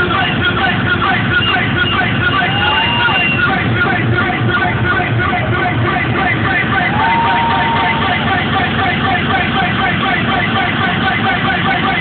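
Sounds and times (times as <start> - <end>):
electronic rave music: 0.0 - 12.0.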